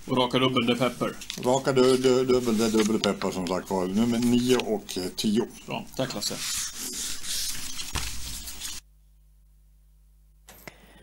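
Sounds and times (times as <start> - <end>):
rustling rubbing noise: 0.0 - 8.9
low electrical hum: 0.0 - 11.0.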